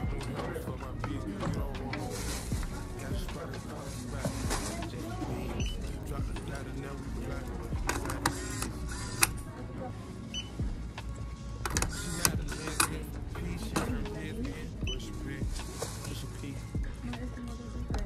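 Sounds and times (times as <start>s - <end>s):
items clattering at register: 0.0s - 9.4s
background music: 0.0s - 18.0s
indistinct voices: 0.0s - 18.0s.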